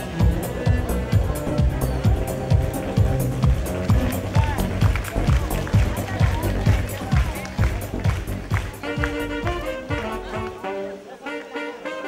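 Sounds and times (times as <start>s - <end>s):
kick drum beat: 0.2s - 10.2s.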